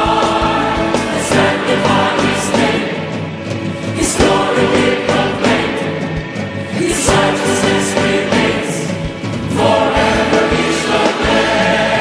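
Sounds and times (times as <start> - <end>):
gospel choir singing a hymn: 0.0 - 12.0
orchestral accompaniment: 0.0 - 12.0.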